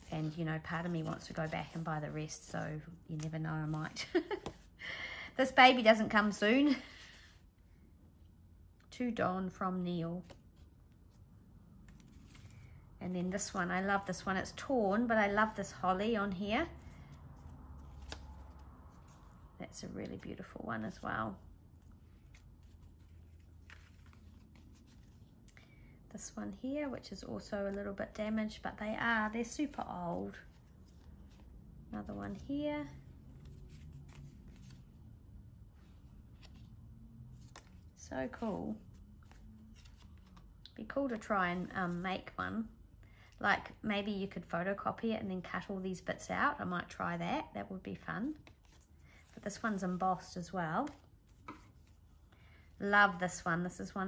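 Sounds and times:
woman speaking: 0.0 - 4.5, 5.4 - 6.8, 8.9 - 10.3, 13.0 - 16.7, 19.6 - 21.4, 26.1 - 30.4, 31.9 - 33.0, 38.0 - 38.8, 40.7 - 42.7, 43.4 - 48.4, 49.4 - 51.0, 52.8 - 54.0
paper cards rustling: 0.0 - 4.8, 11.8 - 14.2, 16.8 - 19.5, 20.1 - 25.7, 29.2 - 35.1, 35.8 - 42.4, 48.3 - 52.6.

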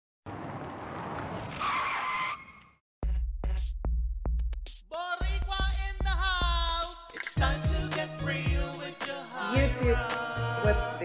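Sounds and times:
tyre screech skid: 0.5 - 2.7.

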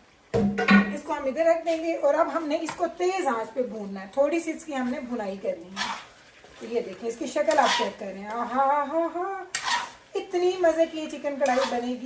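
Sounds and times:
person talking: 0.7 - 5.8, 6.6 - 9.5, 10.2 - 12.0
metal spatula scraping a pan: 5.7 - 8.8, 9.5 - 10.1, 11.3 - 12.0.

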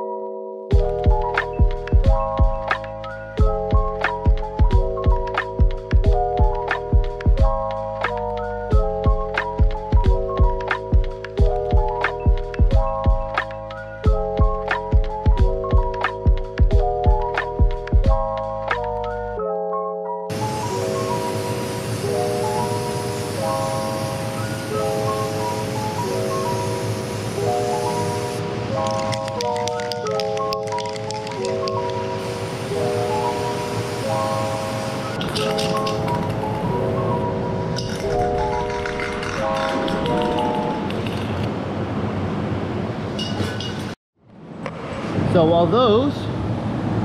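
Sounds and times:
repeating background melody: 0.0 - 21.3.

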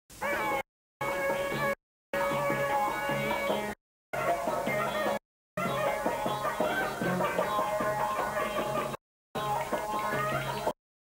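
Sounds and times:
folk dance tune: 0.2 - 10.8.

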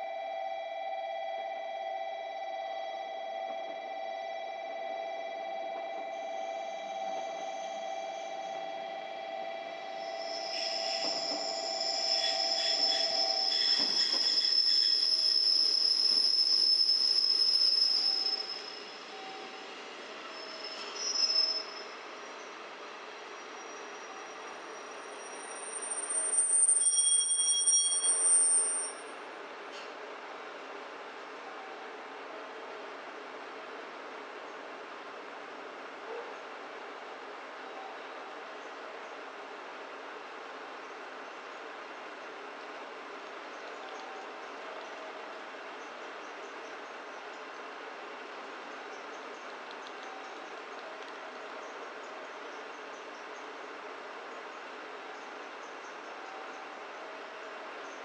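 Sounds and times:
train wheels and brakes squealing: 2.3 - 30.0, 40.5 - 58.0.

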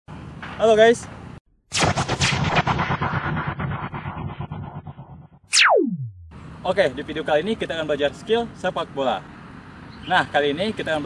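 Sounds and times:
blast of rapid crackling impacts: 1.7 - 6.4.

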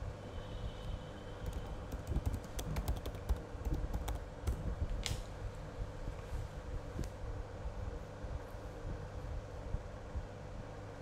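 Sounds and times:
low background hum: 0.0 - 11.0
typing on a computer keyboard: 1.4 - 4.6.

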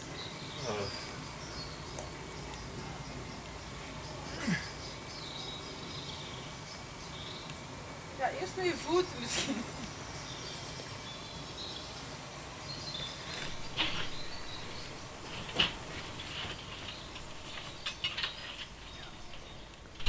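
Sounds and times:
background hiss: 0.0 - 20.0
short knocks and scrapes: 13.4 - 20.0.

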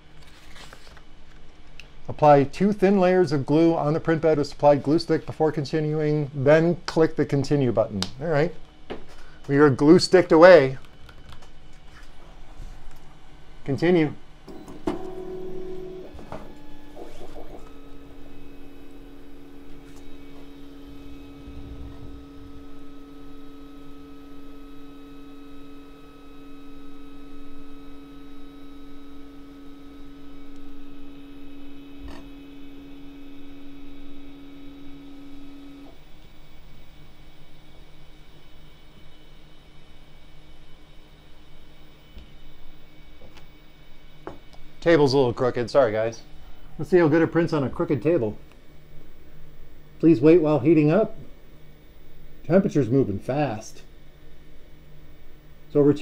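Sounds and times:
printer mechanical whine: 14.4 - 56.0.

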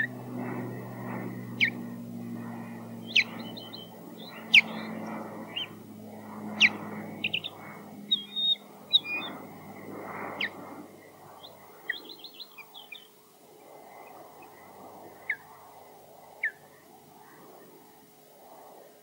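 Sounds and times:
osprey whistled alarm calls: 1.6 - 1.8, 3.0 - 5.8, 6.6 - 9.4.

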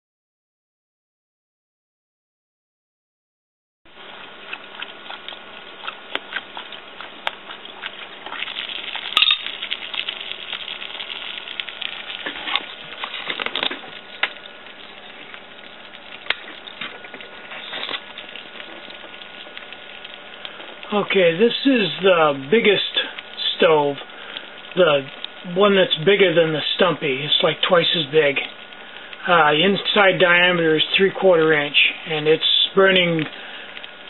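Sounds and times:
steady low hiss: 8.1 - 34.0.

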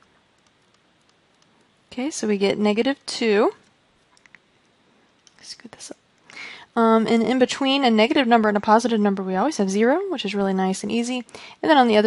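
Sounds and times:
faint clicks: 0.0 - 1.7, 4.1 - 5.4.

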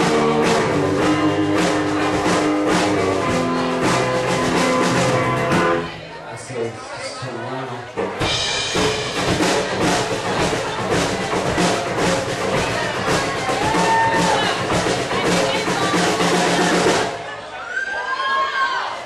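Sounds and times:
drums hitting steadily: 0.0 - 6.0, 8.0 - 17.3
live country-rock band: 0.0 - 17.4
voices: 5.8 - 19.0.

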